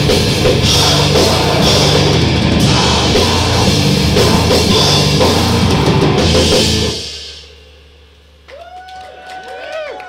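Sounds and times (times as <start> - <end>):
grindcore band playing: 0.0 - 8.4.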